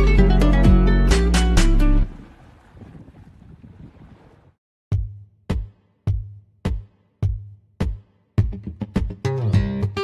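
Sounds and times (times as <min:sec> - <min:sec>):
guitar and keyboard tune: 0:00.0 - 0:02.1, 0:08.5 - 0:10.0
wind on microphone: 0:02.2 - 0:04.5.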